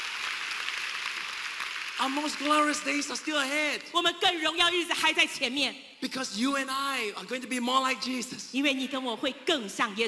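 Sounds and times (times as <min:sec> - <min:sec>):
congregation applauding: 0:00.0 - 0:03.8.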